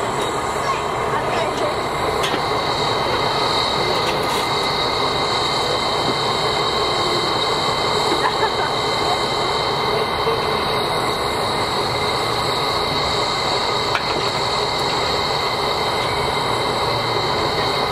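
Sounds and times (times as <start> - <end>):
crowd chatter: 0.0 - 17.9
steam locomotive hissing: 0.0 - 17.9
thin whine: 0.0 - 17.9.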